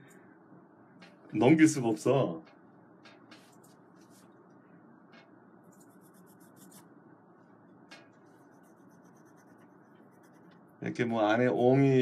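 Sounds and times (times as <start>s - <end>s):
pencil scratching on paper: 5.7s - 6.8s, 8.2s - 10.7s.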